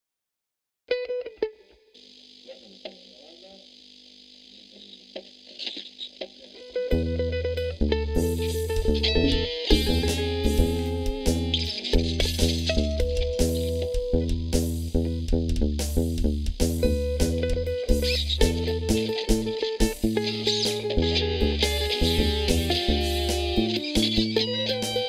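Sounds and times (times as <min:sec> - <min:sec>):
distorted guitars: 0:00.9 - 0:25.0
amplifier hiss: 0:01.9 - 0:25.0
plucked electric guitar notes: 0:06.6 - 0:25.0
heavy bass: 0:06.9 - 0:25.0
drums with cymbal crashes: 0:08.2 - 0:25.0.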